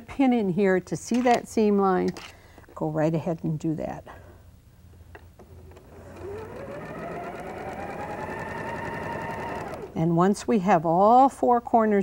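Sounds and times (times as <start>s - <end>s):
sewing machine motor running: 5.5s - 10.0s.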